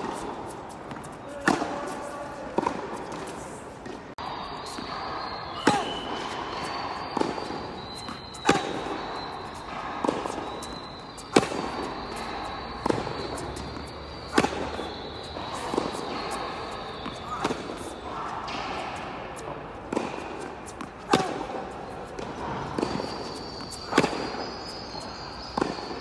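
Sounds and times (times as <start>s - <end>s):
ball bouncing on court: 0.0s - 4.0s, 4.6s - 19.2s, 19.9s - 26.0s
racket hitting tennis ball: 0.0s - 26.0s.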